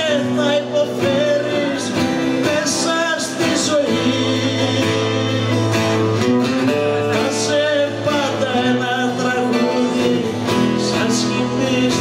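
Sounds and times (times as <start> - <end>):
live folk-rock band playing: 0.0 - 12.0.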